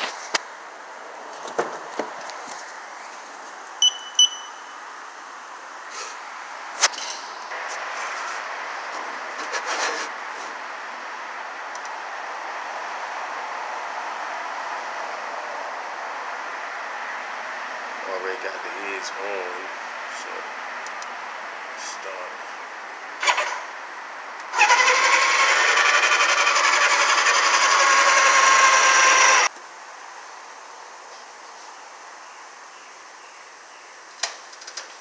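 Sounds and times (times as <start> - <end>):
steady hiss: 2.1 - 3.8, 4.5 - 24.4
high electronic beeps: 3.8 - 4.8.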